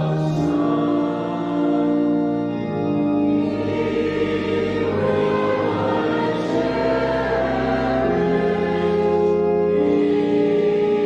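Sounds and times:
choir and congregation singing hymn: 0.0s - 11.0s.

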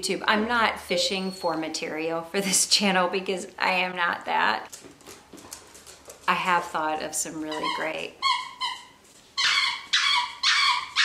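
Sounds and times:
squeaky dog toy: 7.5s - 11.0s.

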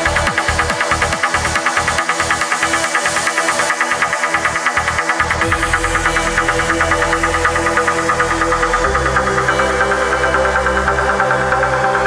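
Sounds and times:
deep bass: 0.0s - 2.8s, 4.0s - 12.0s
pulsing synth line: 0.0s - 12.0s.

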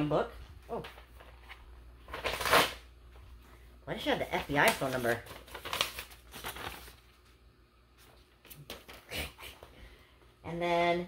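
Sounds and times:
paper pages rustling: 0.7s - 3.2s, 4.1s - 7.4s, 8.0s - 9.1s.

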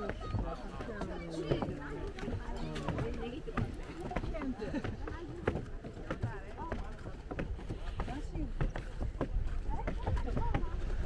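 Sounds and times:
footsteps on wooden stairs: 0.0s - 11.0s
people talking: 0.0s - 11.0s.

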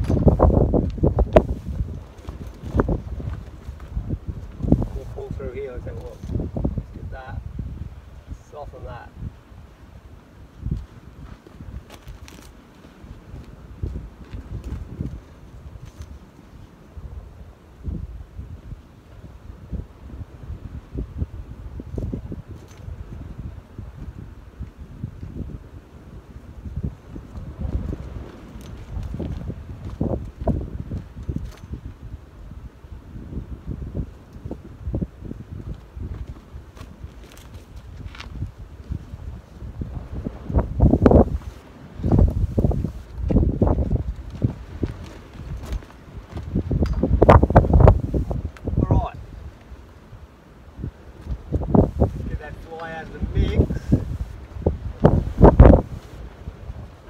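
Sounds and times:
strong wind buffeting microphone: 0.0s - 57.0s.

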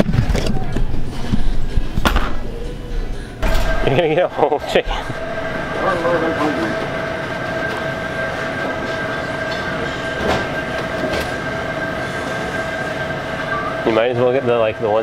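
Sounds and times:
electrical hum of equipment: 0.0s - 15.0s.

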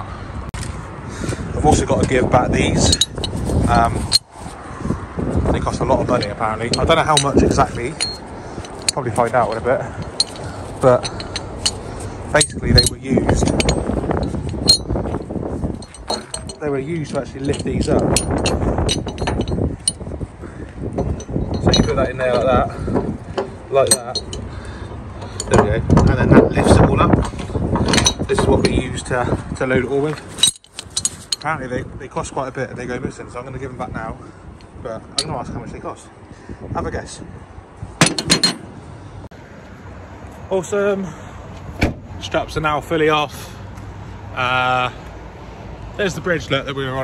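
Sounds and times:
low rumbling background: 0.0s - 39.4s
metal clamps clinking: 1.8s - 4.4s, 5.6s - 31.8s, 34.6s - 35.6s, 38.0s - 38.8s
metal clamps clanking on plate: 15.8s - 20.0s, 20.9s - 24.5s, 25.2s - 31.5s, 38.0s - 38.7s.

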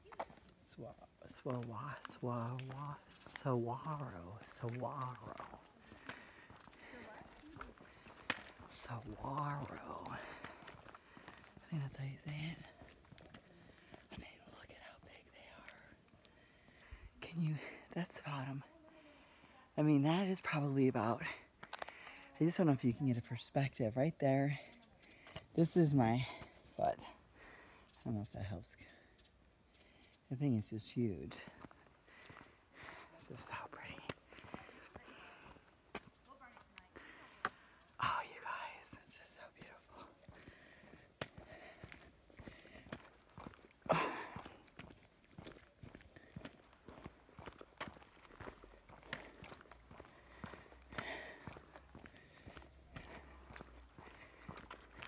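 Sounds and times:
light footsteps: 0.0s - 19.5s, 20.5s - 23.1s, 30.9s - 55.0s
woman whispering faintly: 11.6s - 16.1s, 33.1s - 35.6s, 38.0s - 40.3s.

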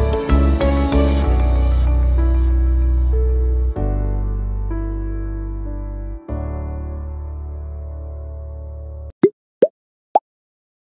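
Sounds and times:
piano music: 0.0s - 9.1s.

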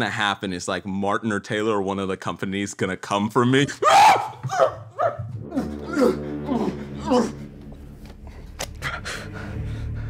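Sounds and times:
man shouting: 3.6s - 4.8s.

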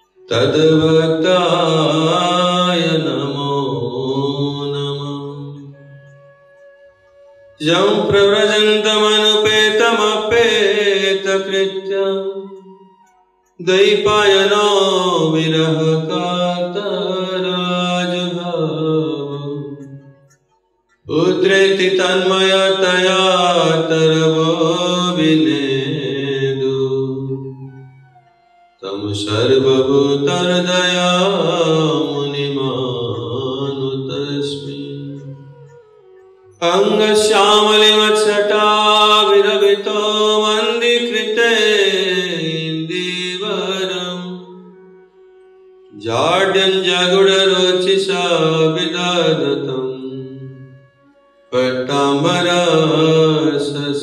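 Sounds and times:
man chanting prayers: 0.0s - 6.4s, 7.6s - 20.3s, 21.0s - 27.6s, 28.7s - 44.9s, 45.9s - 50.8s, 51.4s - 54.0s.

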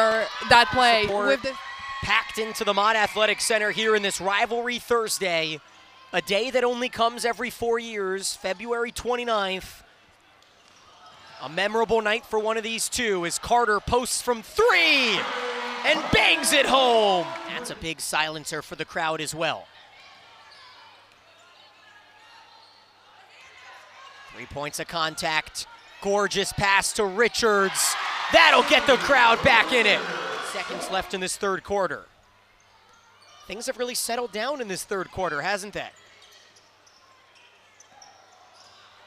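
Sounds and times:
low crowd noise: 14.8s - 18.0s.

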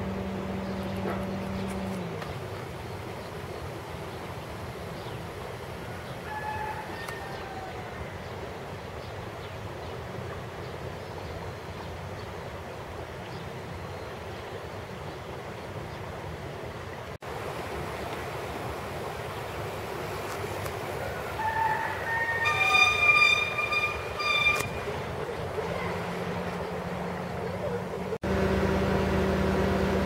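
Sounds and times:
outdoor background noise: 0.0s - 30.0s
pitched held notes: 22.3s - 25.0s.

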